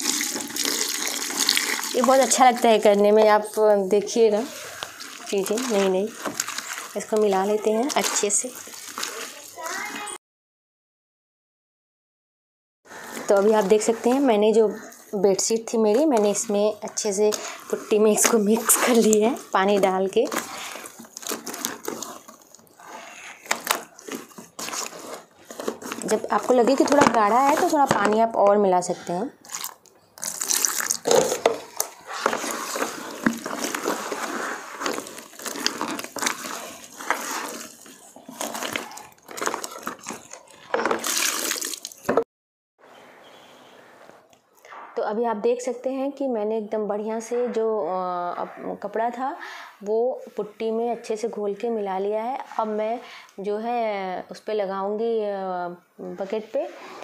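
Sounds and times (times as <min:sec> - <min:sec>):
water pouring into bucket: 0:00.0 - 0:03.0, 0:04.4 - 0:10.1, 0:29.4 - 0:42.2
wet cloth squelching: 0:00.0 - 0:10.1, 0:12.9 - 0:27.9, 0:29.4 - 0:42.2.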